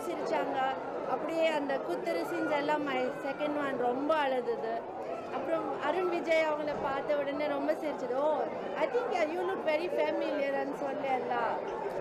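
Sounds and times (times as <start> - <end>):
woman talking: 0.0 - 4.8, 5.4 - 11.6.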